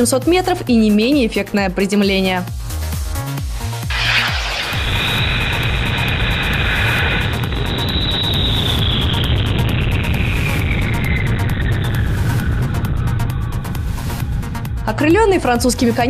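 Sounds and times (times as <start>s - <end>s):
background music: 0.0s - 6.2s, 10.6s - 16.0s
high whine: 3.7s - 14.9s
rocket motor roaring: 3.9s - 14.8s.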